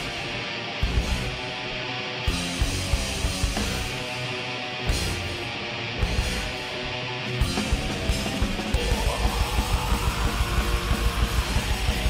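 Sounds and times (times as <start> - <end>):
bass guitar: 0.0 - 12.0
distorted electric guitars: 0.0 - 12.0
fast drum beats: 7.4 - 12.0.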